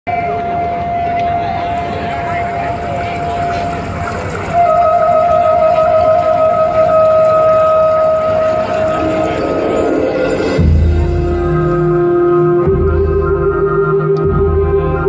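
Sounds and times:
murmur of outdoor crowd: 0.1 - 15.0.

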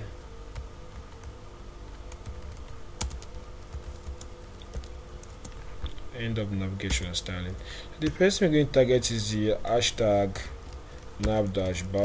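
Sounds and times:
computer keyboard typing: 1.9 - 5.6, 6.8 - 7.2, 8.0 - 8.3, 10.3 - 12.0.

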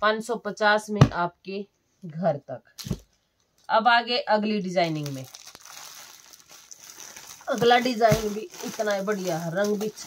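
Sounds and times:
plastic packaging crinkling: 4.8 - 10.0.

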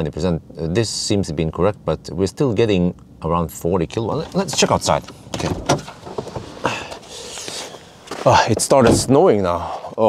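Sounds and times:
car door opening: 4.1 - 9.2.

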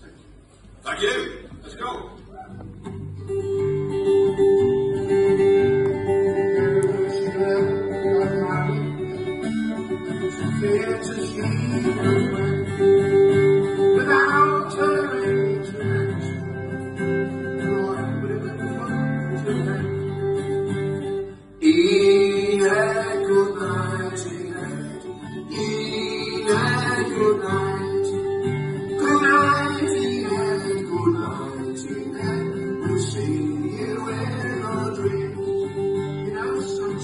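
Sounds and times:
acoustic guitars strummed: 1.8 - 37.0.

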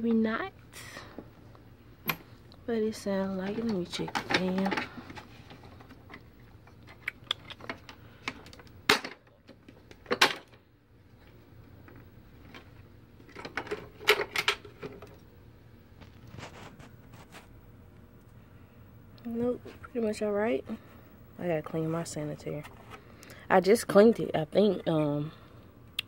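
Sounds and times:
faint low hum: 0.0 - 26.0.

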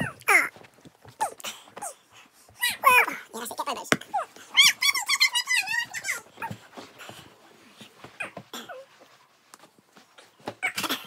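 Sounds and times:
children squealing and giggling: 4.2 - 6.6.

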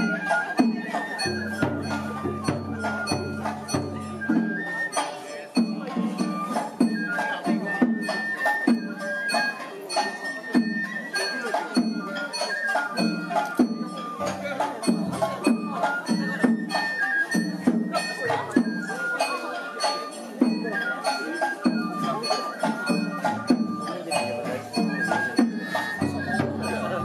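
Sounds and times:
bamboo flutes melody: 0.0 - 27.0
drums beating: 0.0 - 27.0.

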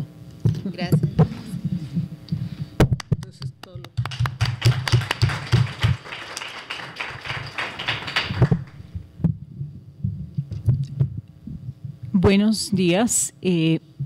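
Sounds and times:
microphone knocks and thumps: 8.5 - 12.0.

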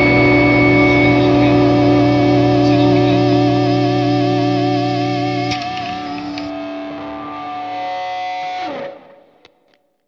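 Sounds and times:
electric guitar chords: 0.0 - 9.7.

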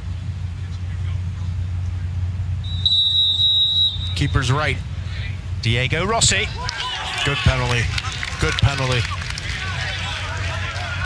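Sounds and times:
low stadium rumble: 0.0 - 11.0
referee whistle blast: 2.6 - 4.6.

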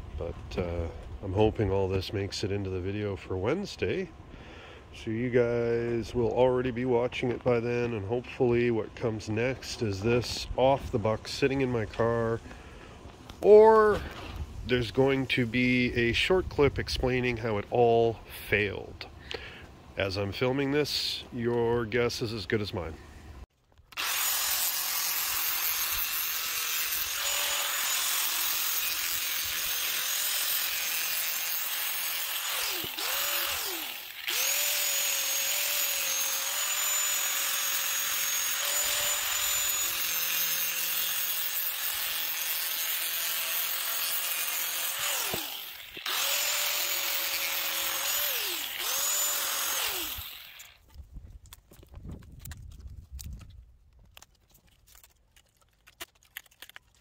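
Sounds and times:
angle grinder cutting: 23.9 - 50.8.

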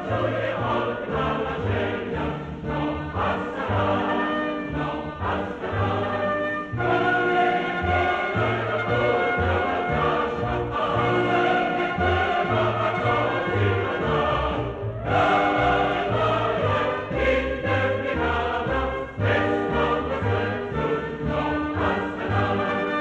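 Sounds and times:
choir singing: 0.0 - 23.0
instrumental accompaniment: 0.0 - 23.0.

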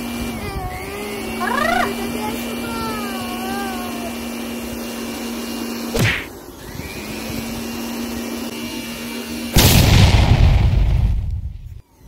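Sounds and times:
air blower droning: 0.0 - 12.0
balloon bursting with loud bang: 6.0 - 6.3, 9.5 - 11.3.

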